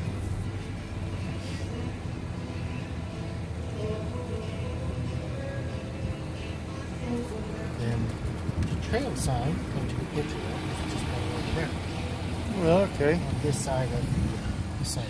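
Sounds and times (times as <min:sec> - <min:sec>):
faint music: 0:00.0 - 0:15.0
vehicle engine idling: 0:00.0 - 0:15.0.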